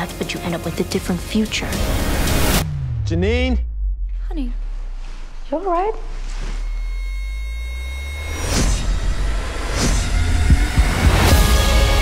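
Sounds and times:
deep bass rumble: 1.1s - 12.0s
low thumps: 1.6s - 12.0s
whoosh: 1.7s - 11.3s.

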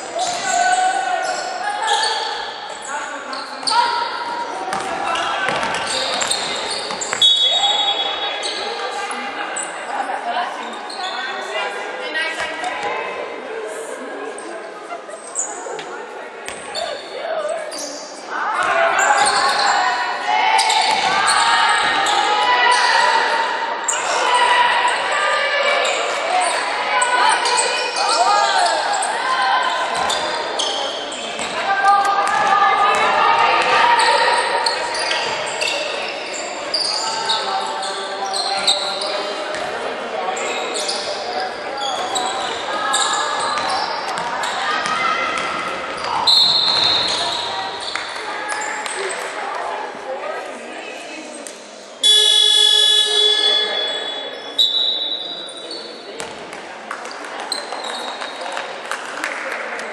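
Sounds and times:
referee's whistle: 5.9s - 8.6s, 46.2s - 47.9s, 52.0s - 55.6s
players calling out: 52.0s - 55.4s.

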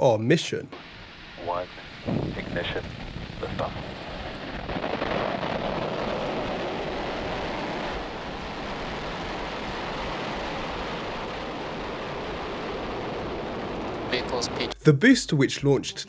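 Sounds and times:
rocket engines rumbling: 0.2s - 16.0s.

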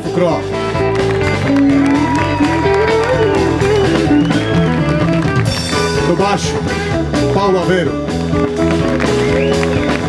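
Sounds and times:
blues band playing: 0.0s - 10.0s
electric guitar lead with bent notes: 0.0s - 10.0s.

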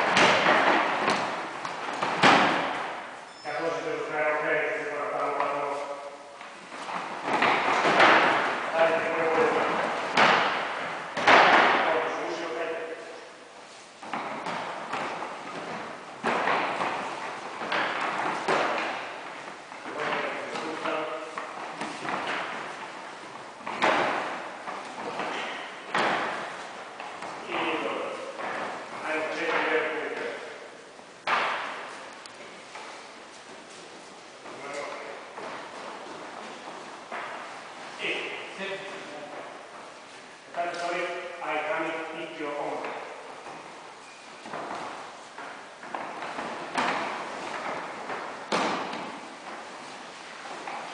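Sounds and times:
bodies thudding on foam mats: 0.0s - 3.3s, 6.4s - 12.1s, 13.6s - 30.4s, 31.2s - 38.0s, 43.0s - 50.9s
voices in echoing gym: 0.0s - 50.9s.

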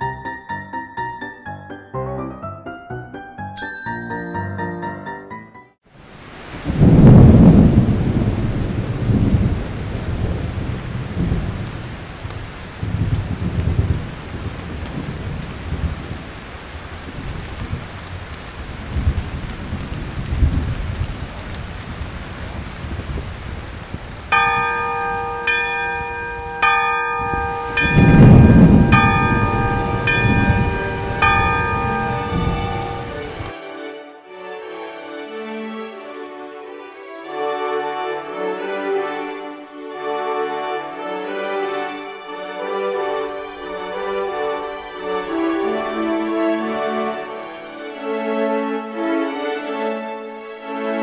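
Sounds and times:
ringing bell tones: 3.6s - 5.4s, 24.4s - 33.4s
steady rain: 5.8s - 33.6s, 36.8s - 49.8s
rolling thunder: 6.5s - 33.5s.

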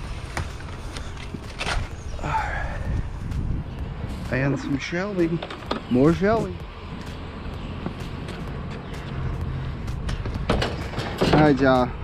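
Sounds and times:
steady low rumble: 0.0s - 12.0s
sharp metal knocks: 10.1s - 11.6s.

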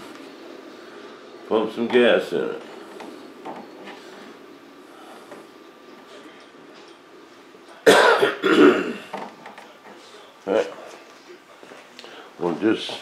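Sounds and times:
man clearing his throat: 7.8s - 9.1s.

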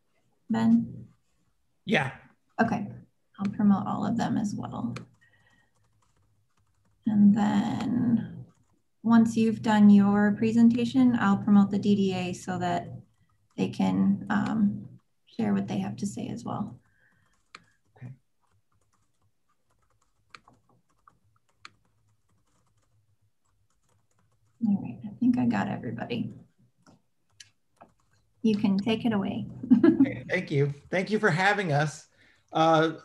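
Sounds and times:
typing on computer keyboard: 3.4s - 8.8s, 9.4s - 28.4s.

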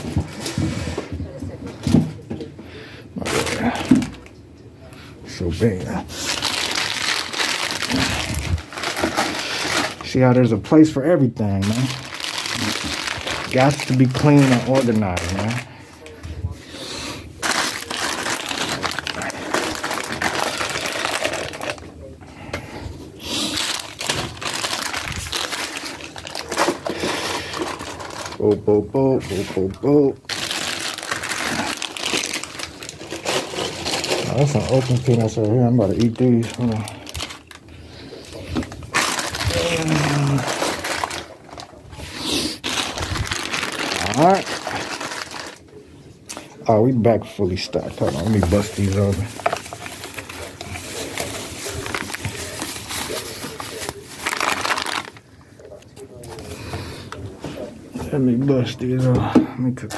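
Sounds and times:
plastic packets crinkling: 3.2s - 4.4s, 5.3s - 16.2s, 16.8s - 22.5s, 23.2s - 56.6s.

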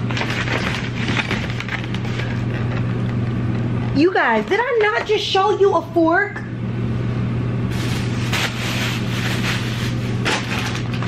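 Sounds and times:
styrofoam container scraping: 7.7s - 11.0s.

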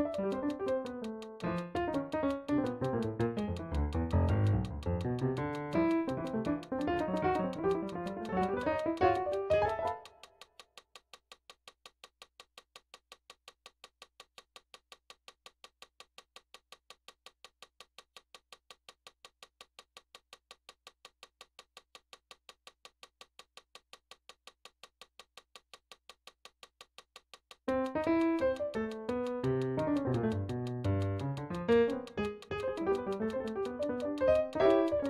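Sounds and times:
faint steady ticking: 0.0s - 35.0s.

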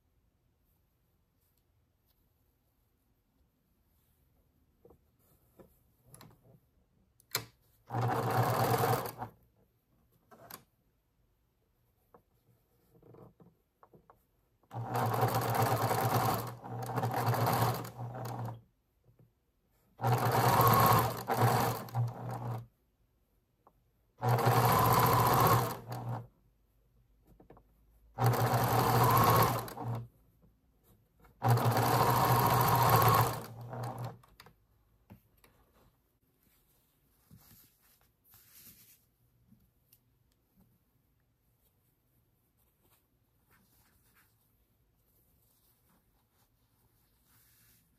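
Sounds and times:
sewing machine stitching: 7.4s - 9.4s, 14.7s - 18.6s, 20.0s - 22.7s, 24.2s - 26.3s, 28.1s - 30.1s, 31.4s - 34.4s.

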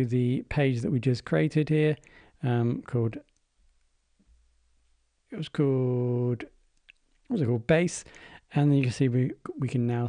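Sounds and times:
person speaking: 0.0s - 3.4s, 5.3s - 10.0s.

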